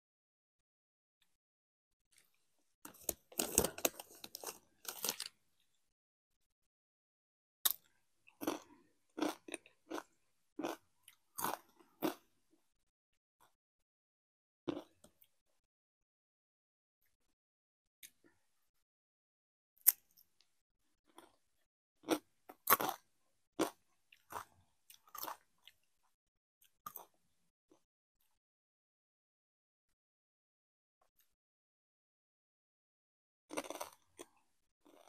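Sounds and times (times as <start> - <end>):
chips being crunched: 2.9 - 5.3
chips crunching while chewed: 2.9 - 5.4, 7.7 - 12.2, 22.0 - 23.0, 23.6 - 25.8, 33.5 - 35.0.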